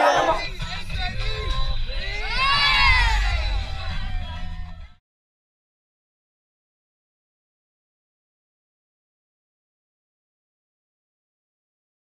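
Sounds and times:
children shouting and cheering: 0:00.0 - 0:00.6, 0:01.9 - 0:04.9
background music with deep bass: 0:00.0 - 0:05.0
long whoop: 0:02.2 - 0:04.4.

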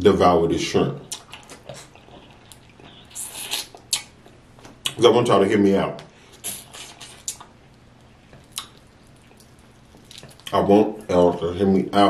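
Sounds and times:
person chewing: 0:01.0 - 0:05.0, 0:06.2 - 0:10.6
small sharp mouth clicks: 0:01.0 - 0:05.0, 0:06.4 - 0:07.6, 0:08.4 - 0:10.5.

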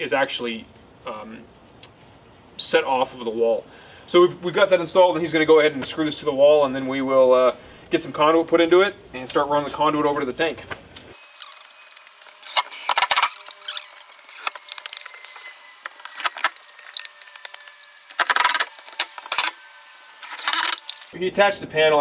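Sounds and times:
cordless drill driving screws: 0:11.1 - 0:21.2.

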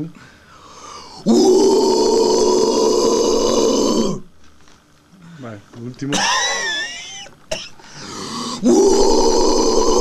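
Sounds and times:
man's guttural growl: 0:01.2 - 0:04.2, 0:08.0 - 0:10.0.

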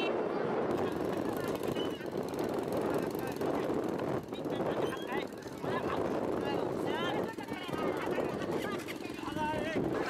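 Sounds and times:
crowd talking hubbub: 0:00.0 - 0:10.0.

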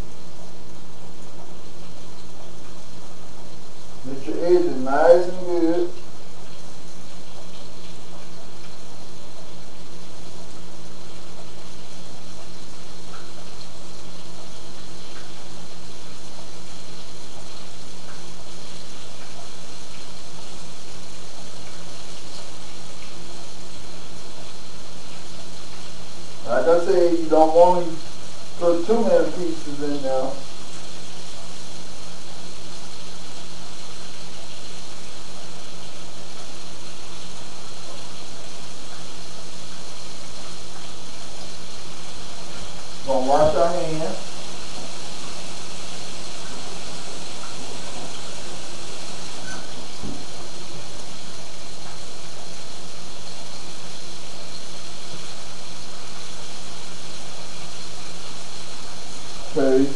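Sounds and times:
battered fish frying: 0:00.0 - 0:59.9.

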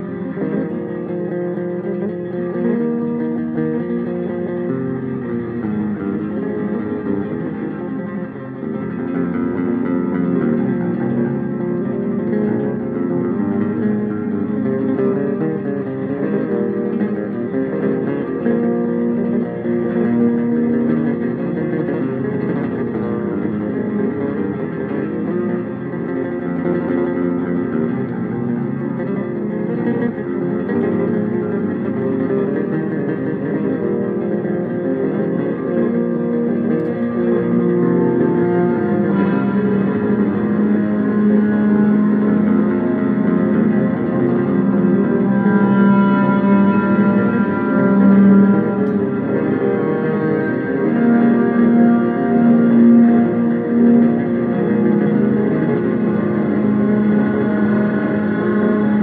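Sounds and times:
electric bass with effects: 0:00.0 - 0:59.0.

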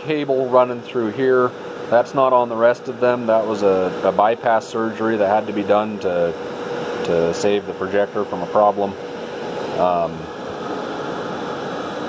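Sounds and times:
projector cooling fans whirring: 0:00.0 - 0:12.0.

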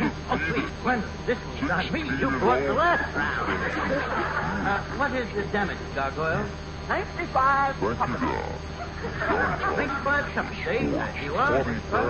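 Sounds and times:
studio audience laughing: 0:02.8 - 0:05.0, 0:08.8 - 0:10.0.

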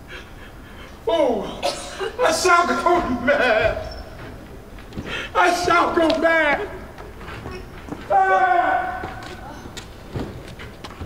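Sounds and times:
footsteps on hard floor: 0:02.9 - 0:08.2, 0:09.0 - 0:11.0.

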